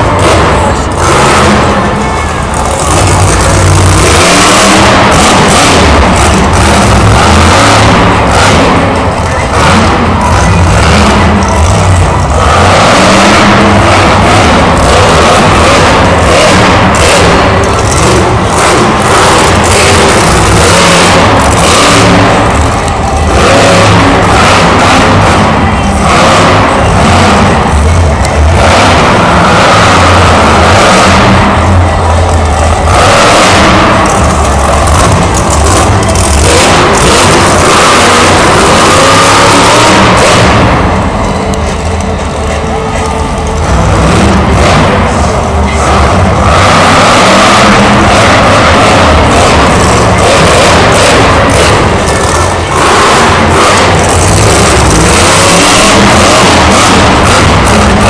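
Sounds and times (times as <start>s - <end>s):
truck engine revving hard: 0.0s - 58.0s.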